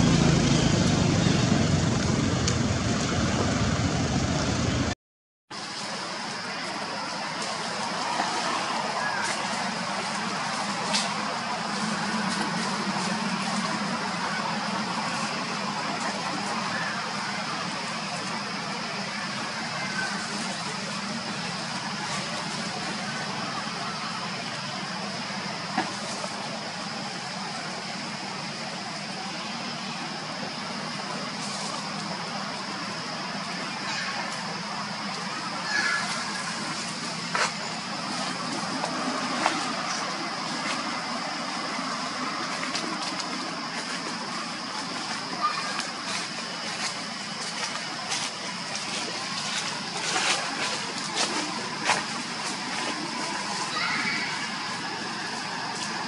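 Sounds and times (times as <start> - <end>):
low hum: 0.0 - 5.0
constant high whine: 0.0 - 56.0.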